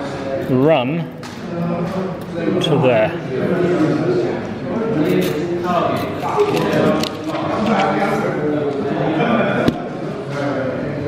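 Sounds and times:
men talking: 0:00.0 - 0:11.0.

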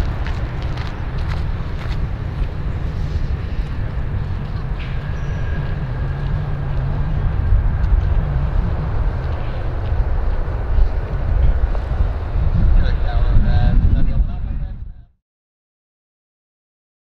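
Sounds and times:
jet engines rumbling: 0:00.0 - 0:15.1
wind buffeting microphone: 0:00.0 - 0:15.2.

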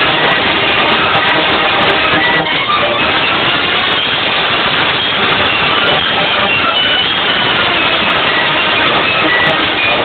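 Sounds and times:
wind band playing: 0:00.0 - 0:10.0.

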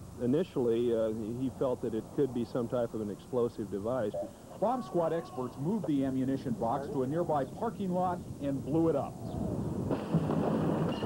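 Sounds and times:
explosion with low rumble: 0:09.6 - 0:11.0.

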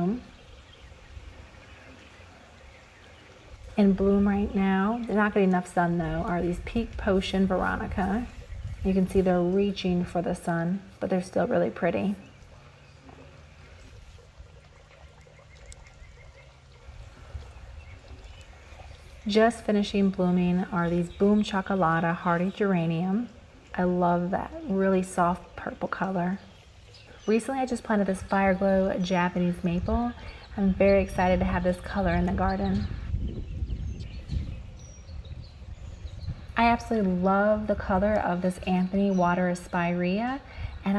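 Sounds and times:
wind rumble on microphone: 0:00.0 - 0:40.9.

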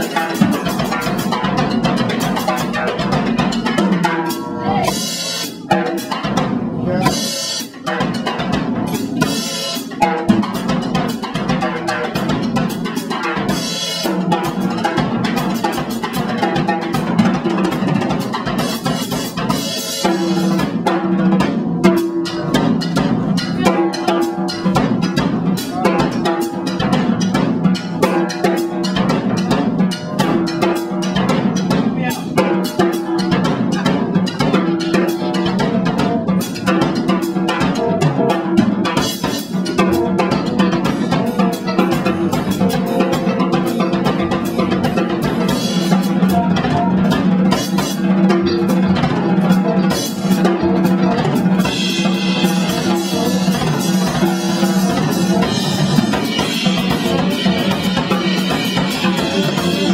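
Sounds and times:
fast drum solo: 0:00.0 - 0:59.9.

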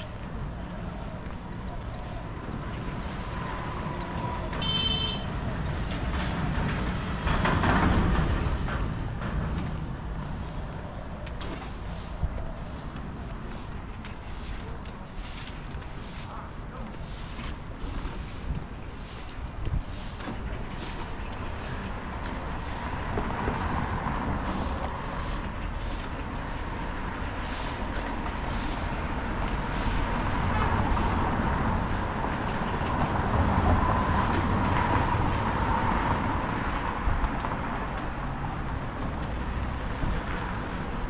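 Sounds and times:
footsteps on pavement: 0:00.0 - 0:07.2, 0:08.2 - 0:41.0
vehicles passing: 0:00.0 - 0:41.0.

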